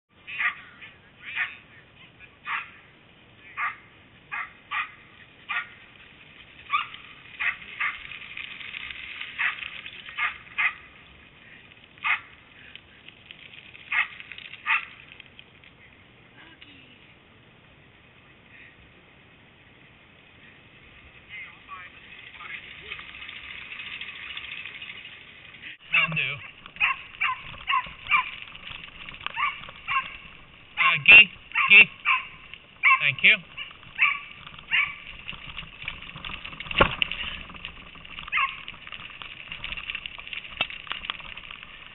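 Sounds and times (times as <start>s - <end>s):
dogs barking in sharp yips: 0.3s - 1.6s, 2.4s - 2.8s, 3.5s - 5.8s, 6.7s - 8.2s, 9.4s - 10.9s, 12.0s - 12.4s, 13.9s - 15.0s, 25.9s - 28.6s, 29.2s - 35.3s, 38.2s - 38.8s.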